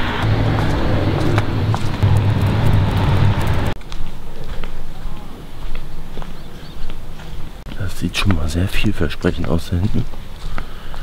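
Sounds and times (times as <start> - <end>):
car passing: 0.0 - 3.8
outdoor background noise: 0.0 - 11.0.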